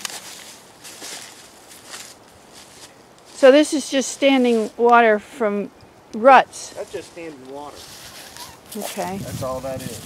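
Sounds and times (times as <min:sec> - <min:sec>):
footsteps in dry leaves: 0:00.0 - 0:04.9, 0:06.7 - 0:10.0.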